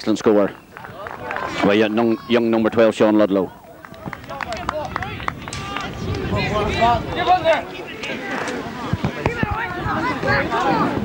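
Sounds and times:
scattered handclaps: 0:00.7 - 0:01.6, 0:03.7 - 0:06.5.

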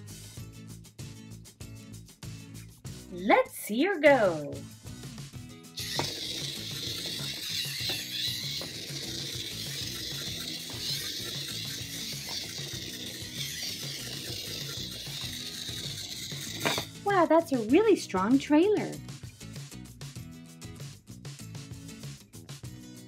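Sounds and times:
background music with steady beat: 0:00.0 - 0:23.0
toy truck motor and gears whining: 0:05.8 - 0:16.9.

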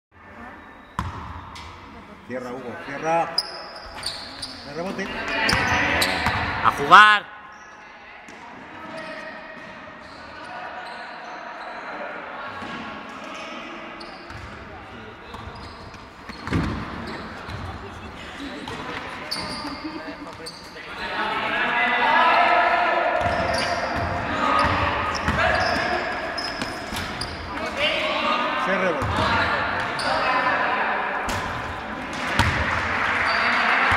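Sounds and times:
voices calling out in a gym: 0:00.1 - 0:33.9
basketball bouncing on court: 0:01.0 - 0:01.7, 0:14.3 - 0:14.6, 0:15.3 - 0:17.8, 0:23.2 - 0:27.4, 0:29.0 - 0:30.0, 0:31.3 - 0:32.8.

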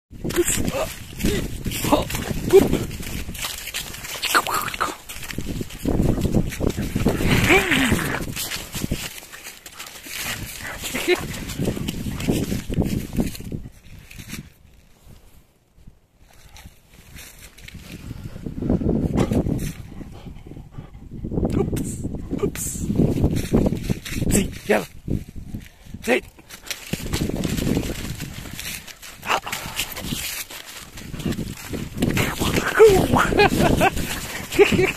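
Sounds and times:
dog scuffling on leaves: 0:00.2 - 0:14.4, 0:26.5 - 0:34.9
dog vocal sound: 0:09.8 - 0:12.3, 0:32.0 - 0:34.9.

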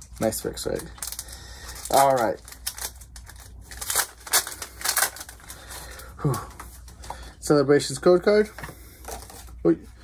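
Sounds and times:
foil wrapper crinkling and tearing: 0:00.0 - 0:06.2.

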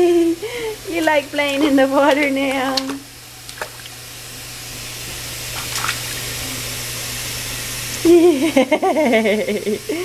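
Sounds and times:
running faucet: 0:00.0 - 0:10.0
baby slapping water in tub: 0:01.0 - 0:04.0, 0:05.4 - 0:06.6.

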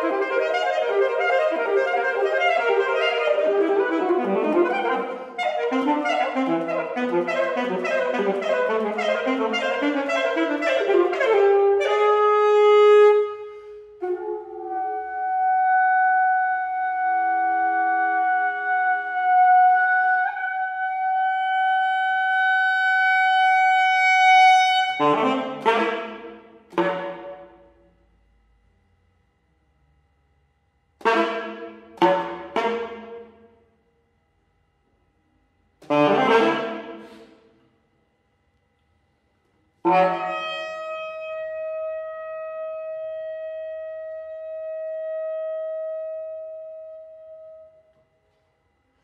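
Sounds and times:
saxophone long steady note: 0:00.0 - 0:28.4, 0:30.9 - 0:34.2, 0:34.8 - 0:37.8, 0:38.8 - 0:49.0
saxophone holding high note: 0:31.0 - 0:33.6, 0:35.8 - 0:37.6.

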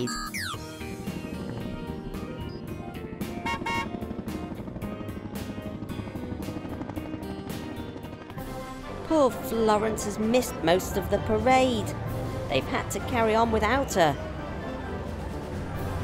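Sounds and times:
background music: 0:00.0 - 0:16.0
cartoon helicopter rotor chopping: 0:00.1 - 0:08.4.

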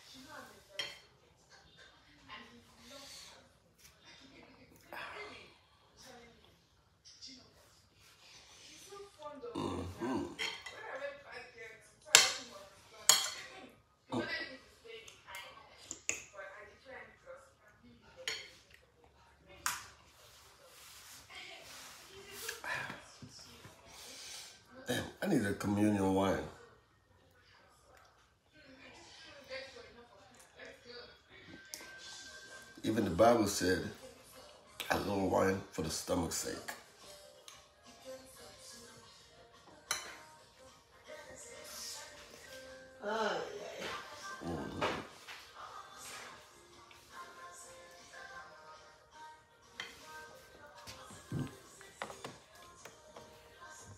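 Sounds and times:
faint background music: 0:00.0 - 0:53.9.

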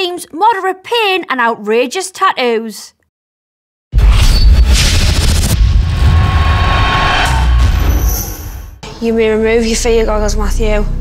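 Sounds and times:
deep rumbling sound effect: 0:04.0 - 0:08.8
hissing rush: 0:04.8 - 0:08.4.

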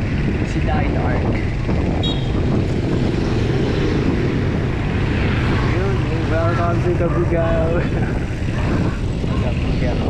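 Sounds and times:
road noise: 0:00.0 - 0:10.0
wind rumbling on microphone: 0:00.0 - 0:10.0.

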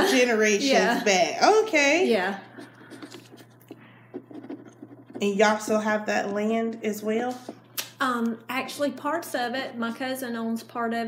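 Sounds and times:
low steady hum: 0:00.0 - 0:11.0
faint short scratching: 0:02.4 - 0:06.3.

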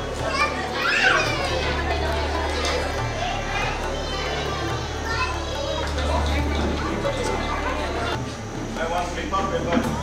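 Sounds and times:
children talking and calling out: 0:00.0 - 0:08.2
high child's voice: 0:00.2 - 0:07.0.

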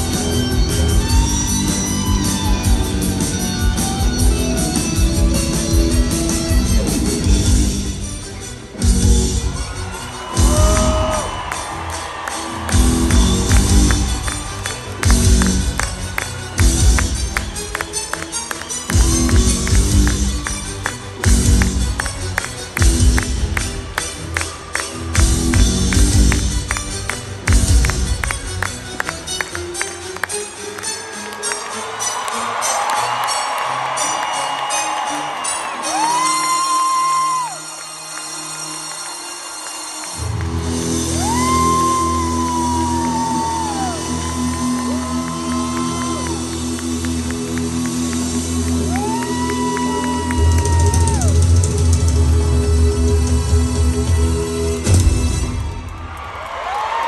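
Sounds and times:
rock band playing live: 0:00.0 - 0:29.1.

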